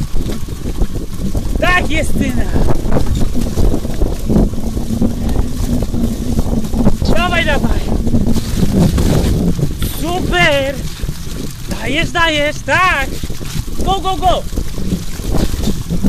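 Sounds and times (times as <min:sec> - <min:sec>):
bike tyres rolling on muddy trail: 0:00.0 - 0:16.0
wind on microphone: 0:00.0 - 0:16.0.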